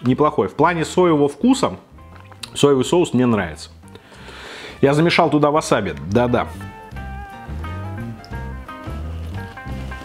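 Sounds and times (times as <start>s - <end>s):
pulsing bass line: 6.0s - 10.0s
short melodic notes: 6.0s - 10.0s.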